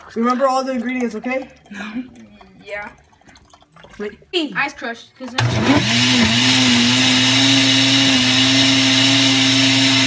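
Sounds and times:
blender crushing ice: 0:05.4 - 0:10.0.

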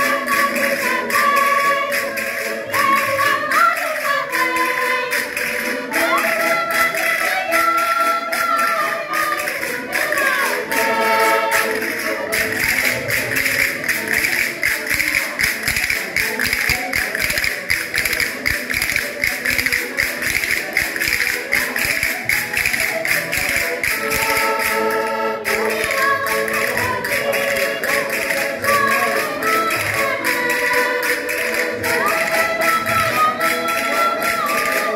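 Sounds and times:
button accordion folk tune: 0:00.0 - 0:34.9
group singing: 0:00.0 - 0:34.9
sharp rhythmic taps: 0:00.0 - 0:34.9.

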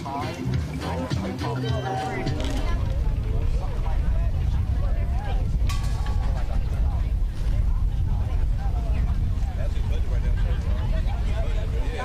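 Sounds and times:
crowd talking: 0:00.0 - 0:12.0
wind rumbling on microphone: 0:02.0 - 0:12.0.

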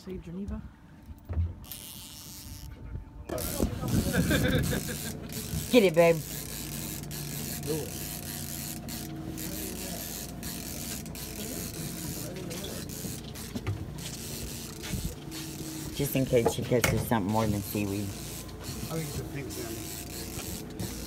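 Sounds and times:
boat engine humming: 0:00.0 - 0:21.0
faint voices: 0:09.2 - 0:13.6.

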